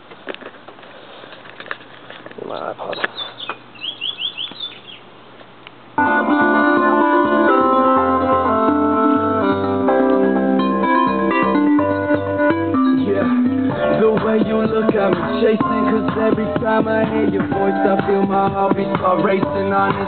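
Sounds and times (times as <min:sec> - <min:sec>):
loud music with pulsing bass: 0:06.7 - 0:20.0.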